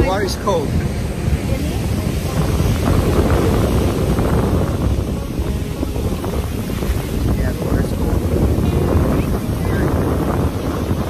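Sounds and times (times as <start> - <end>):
ocean surf breaking: 0.0 - 11.0
wind buffeting microphone: 0.0 - 11.0.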